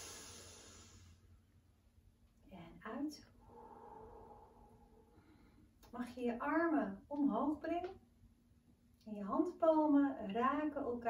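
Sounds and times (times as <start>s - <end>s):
woman breathing in deeply: 0.0s - 1.2s, 3.4s - 5.8s
woman's voice: 6.0s - 8.0s, 9.1s - 11.0s.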